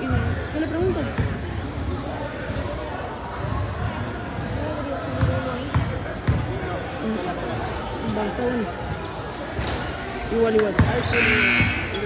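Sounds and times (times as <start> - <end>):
voices talking: 10.6 - 12.0.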